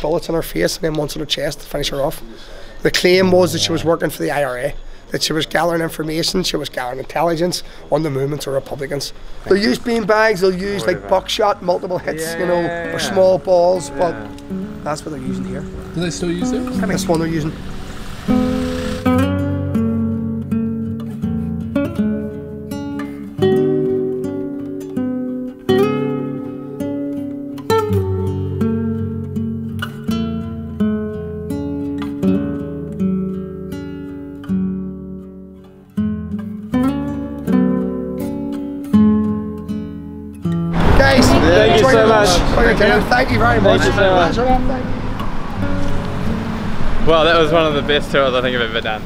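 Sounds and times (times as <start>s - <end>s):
acoustic guitar picking melody: 2.5s - 49.0s.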